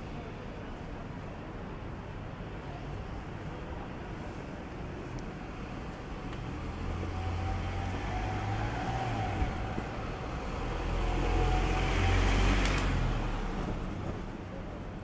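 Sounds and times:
vehicle driving past: 6.4 - 14.1.

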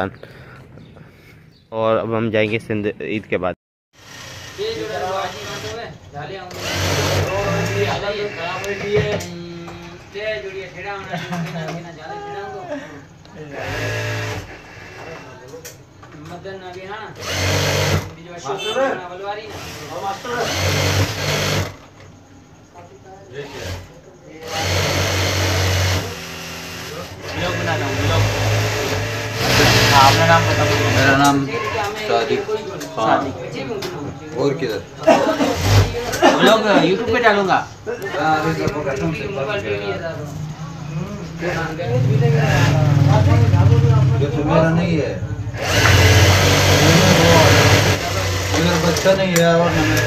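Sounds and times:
sewing machine running: 4.0 - 5.9, 6.5 - 9.0, 13.5 - 15.2, 17.2 - 18.1, 19.5 - 21.8, 23.4 - 31.5, 35.4 - 36.1, 42.4 - 42.9, 45.6 - 50.0.

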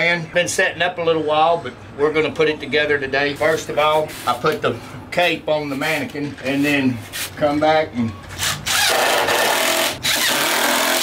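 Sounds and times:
power drill grinding: 8.4 - 11.0.

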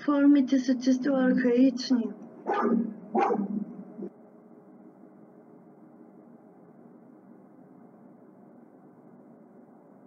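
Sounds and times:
dog barking: 2.4 - 3.8.

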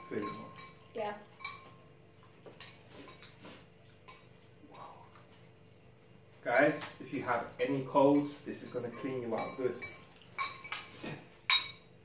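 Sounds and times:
metal forks clinking against bowls: 0.0 - 3.4, 4.0 - 5.2, 6.5 - 12.0.

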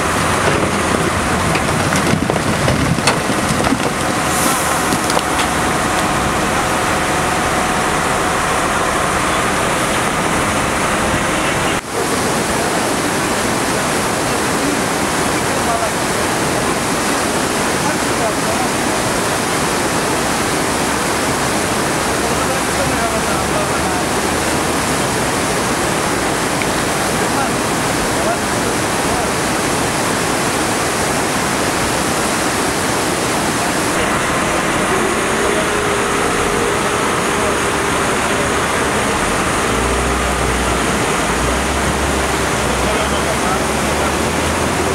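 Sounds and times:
river rushing: 0.0 - 44.9.

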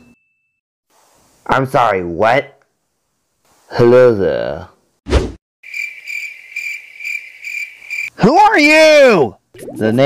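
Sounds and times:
short swish: 5.1 - 5.4
cricket chirping: 5.6 - 8.2.

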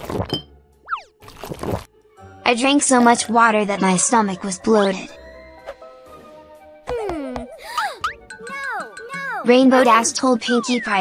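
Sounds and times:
light background music: 0.2 - 11.0.

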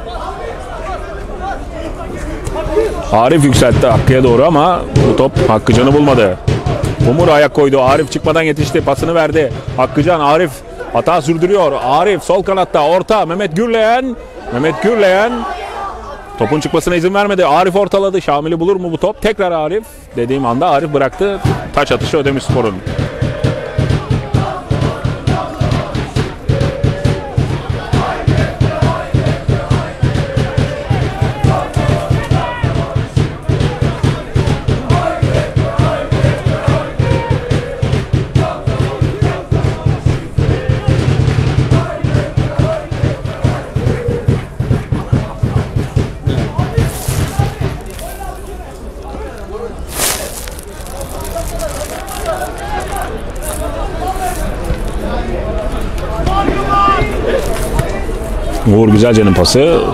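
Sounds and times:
crowd noise: 0.0 - 59.9
fast drum beat: 3.5 - 10.3, 21.4 - 48.5
supporters chanting: 21.2 - 49.2.

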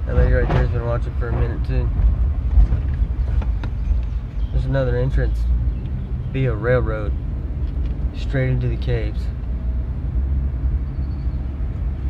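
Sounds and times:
vehicle road and engine rumble: 0.0 - 12.0.

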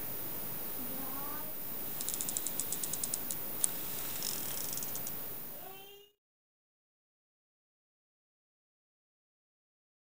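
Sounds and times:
toy motor ratchet clicking: 2.0 - 3.3, 4.2 - 5.1
toy motor whirring: 2.0 - 3.3, 4.0 - 5.1.

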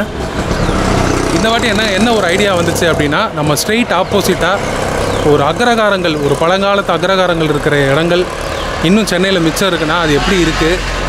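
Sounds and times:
street traffic noise: 0.0 - 11.0
vehicle engine running: 0.0 - 11.0
man speaking: 1.3 - 10.9.

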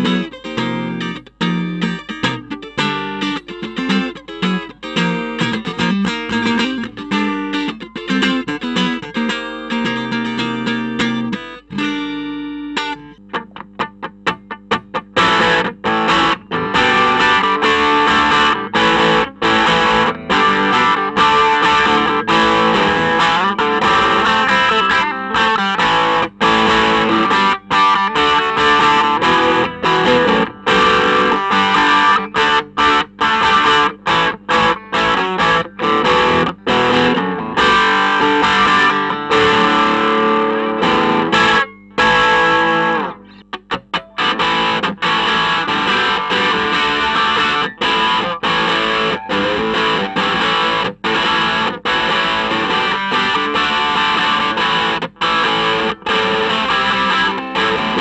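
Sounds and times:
clean electric guitar: 0.0 - 58.0
overdriven electric guitar riffing: 0.0 - 58.0.

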